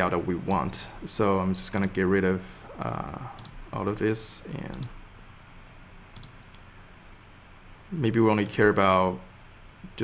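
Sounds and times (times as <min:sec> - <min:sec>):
low room noise: 0:00.0 - 0:10.0
computer mouse clicks: 0:01.7 - 0:02.0, 0:03.4 - 0:03.6, 0:04.5 - 0:05.0, 0:06.1 - 0:06.6.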